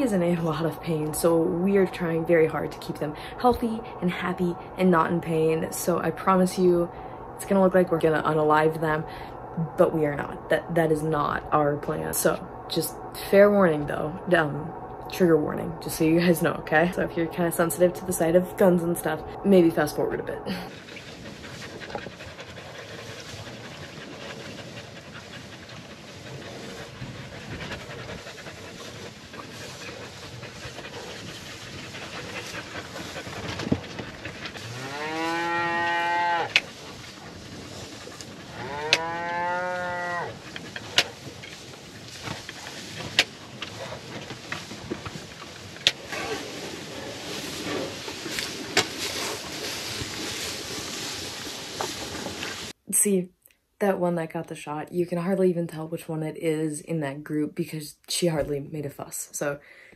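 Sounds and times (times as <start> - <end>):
cattle mooing: 34.0 - 36.7, 38.1 - 41.1.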